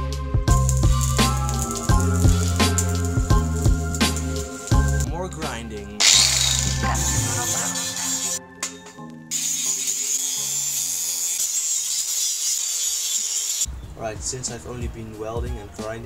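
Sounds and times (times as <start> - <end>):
background music with bass line: 0.0 - 9.0
angle grinder grinding steel: 0.6 - 4.9, 6.0 - 13.7.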